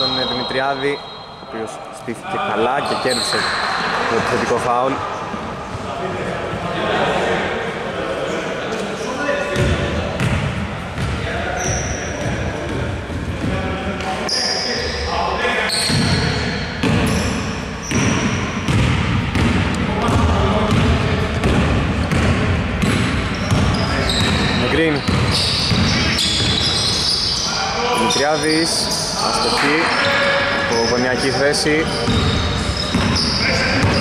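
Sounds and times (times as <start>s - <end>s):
sneaker squeaks: 0.0s - 2.0s, 2.7s - 5.8s, 9.0s - 13.2s, 14.0s - 19.6s, 20.7s - 34.0s
players' voices: 0.0s - 18.3s, 19.4s - 34.0s
basketball bouncing on court: 9.6s - 13.6s, 16.8s - 27.1s, 31.8s - 34.0s.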